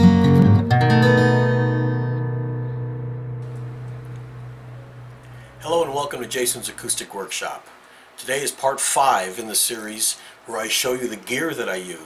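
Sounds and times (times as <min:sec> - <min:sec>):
acoustic guitar chord ringing: 0:00.0 - 0:06.8
faint room hiss: 0:02.8 - 0:12.0.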